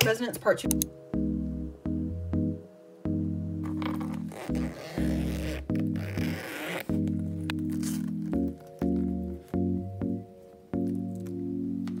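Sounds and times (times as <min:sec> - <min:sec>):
soft ticking beat: 0:00.0 - 0:03.7
background music with chords: 0:00.0 - 0:12.0
plastic sleeves crinkling: 0:03.8 - 0:09.6.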